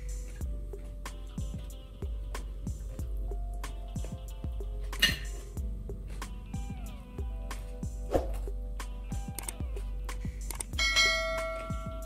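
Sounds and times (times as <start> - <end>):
background music with steady beat: 0.0 - 12.0
bright bell chime: 10.8 - 12.0.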